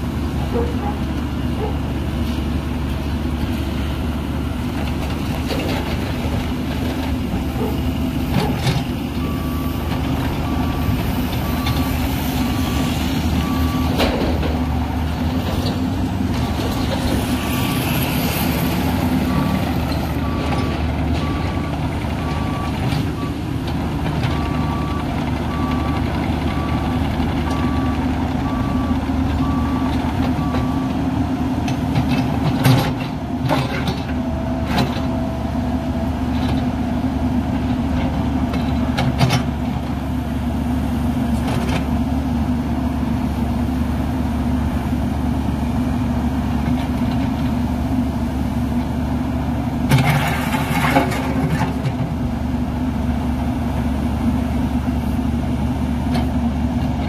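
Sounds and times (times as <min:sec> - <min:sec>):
excavator diesel engine running: 0:00.0 - 0:57.0.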